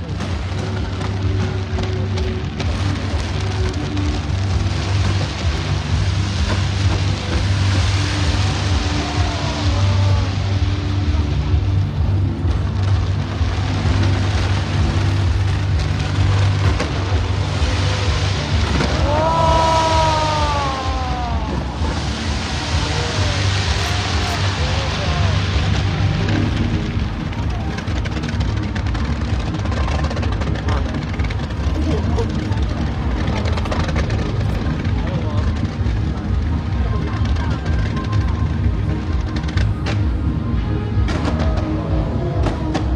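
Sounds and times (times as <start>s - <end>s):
crowd voices: 0.0s - 42.9s
fireworks crackle and bursts: 0.0s - 42.9s
music: 0.0s - 42.9s
rising and falling whoop: 8.0s - 10.6s, 18.8s - 25.7s.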